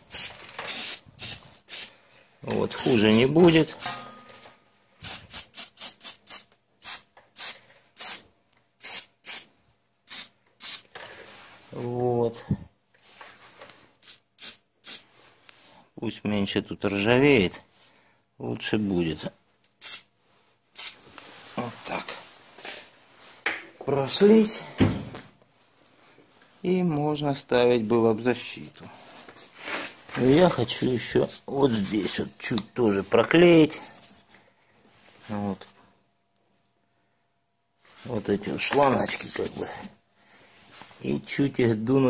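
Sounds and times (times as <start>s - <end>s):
aerosol spray bursts: 0.1s - 1.9s, 5.0s - 8.2s, 8.8s - 9.5s, 10.1s - 10.8s, 19.8s - 20.1s, 20.8s - 21.0s
person speaking: 2.4s - 4.0s, 11.7s - 12.7s, 18.4s - 19.4s, 21.5s - 22.8s, 23.8s - 25.2s, 26.6s - 34.0s, 35.2s - 35.8s, 38.0s - 40.0s, 40.9s - 42.0s.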